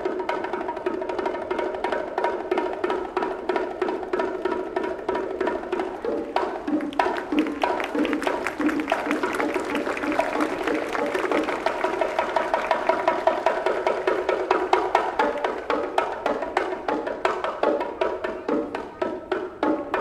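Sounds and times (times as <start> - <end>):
bongos played by hand: 0.0 - 20.0.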